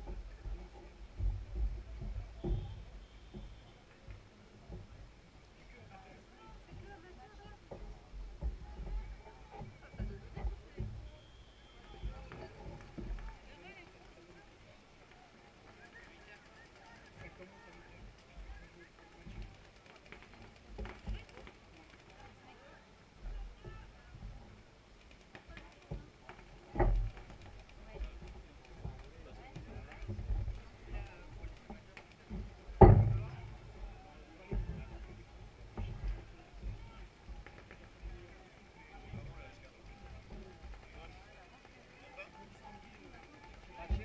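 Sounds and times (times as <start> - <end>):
crowd chatter: 0.0 - 44.0
dull thump: 31.7 - 33.8.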